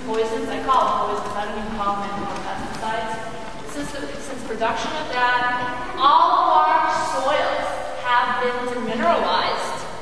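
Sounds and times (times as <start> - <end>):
woman speaking: 0.0 - 9.9.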